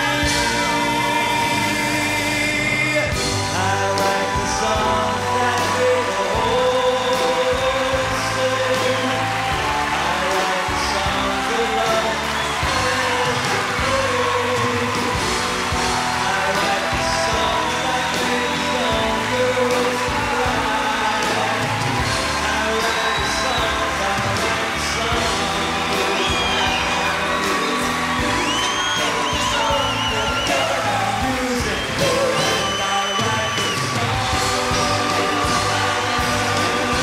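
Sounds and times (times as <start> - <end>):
audience cheering: 0.0 - 37.0
live pop band: 0.0 - 37.0
long high whistles: 25.9 - 30.9, 31.7 - 34.1.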